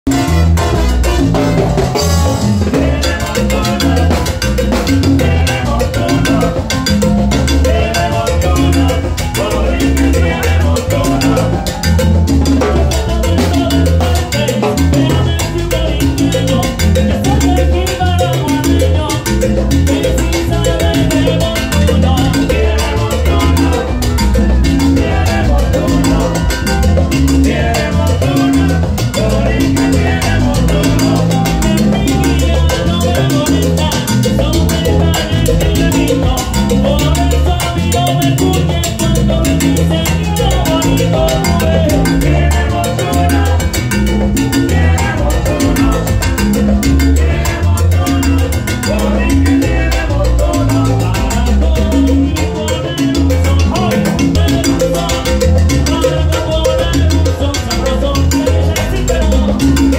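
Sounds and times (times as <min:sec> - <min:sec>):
busy percussion: 0:00.0 - 0:59.9
heavy bass line: 0:00.0 - 0:59.9
salsa orchestra playing loudly: 0:00.0 - 0:59.9.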